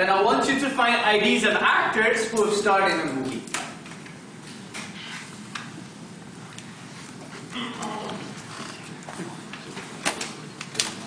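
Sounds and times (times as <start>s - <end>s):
faint murmur and rustling: 2.3s - 11.0s.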